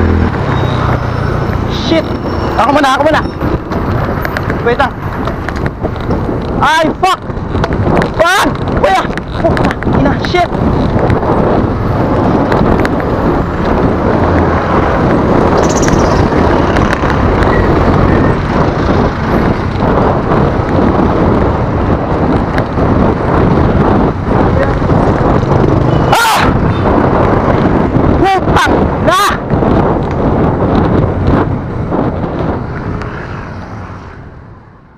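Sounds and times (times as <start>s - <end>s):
passing motor vehicles: 0.0s - 34.9s
wind buffeting microphone: 0.0s - 34.9s.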